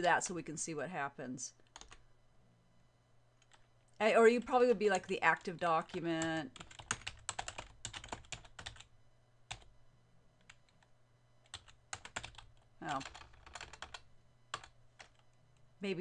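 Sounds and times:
computer keyboard typing: 0:01.7 - 0:02.0, 0:05.9 - 0:08.9, 0:09.5 - 0:09.7, 0:10.4 - 0:15.2.

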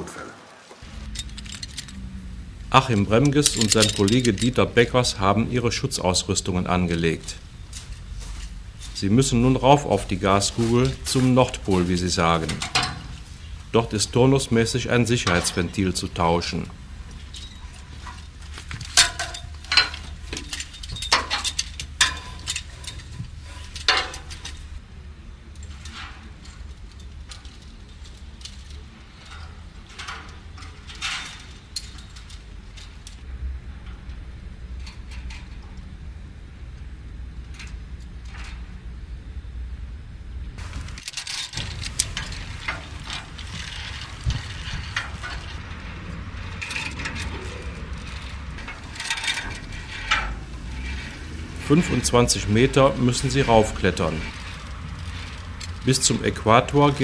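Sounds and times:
hands and boots on steel rungs: 0:00.8 - 0:24.9, 0:40.6 - 0:57.0
steady low rumble: 0:00.8 - 0:57.0
harness hardware clicking on steel: 0:00.9 - 0:02.1, 0:02.7 - 0:05.4.

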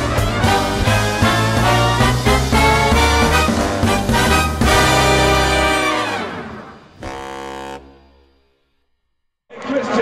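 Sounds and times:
brass fanfare blast: 0:00.0 - 0:08.5.

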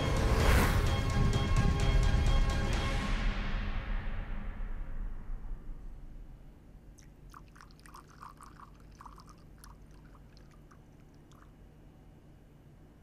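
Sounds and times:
music: 0:00.0 - 0:06.5
low room hum: 0:03.4 - 0:13.0.

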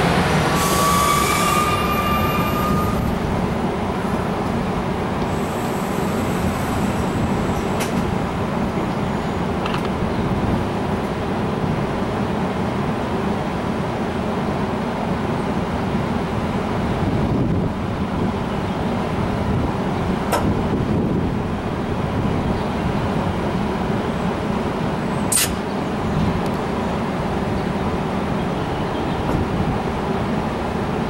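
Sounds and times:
diesel locomotive idling rumble: 0:00.0 - 0:31.0
sharp hiss of air: 0:25.3 - 0:25.6.

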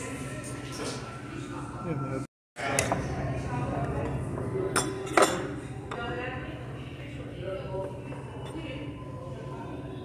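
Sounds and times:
murmur of voices: 0:00.0 - 0:10.0
tableware clinking: 0:04.7 - 0:06.1.

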